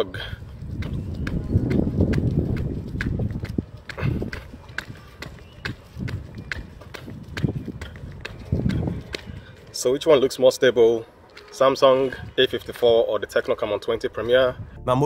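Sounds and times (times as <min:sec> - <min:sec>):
jogging footsteps on pavement: 0:00.0 - 0:14.6
low rumble: 0:14.6 - 0:15.0.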